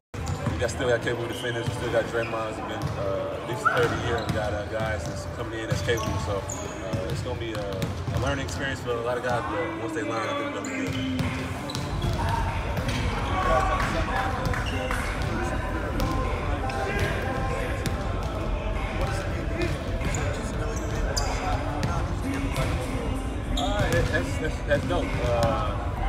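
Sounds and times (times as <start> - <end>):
background talking: 0.2 - 26.0
basketballs bouncing on hardwood: 7.0 - 8.3.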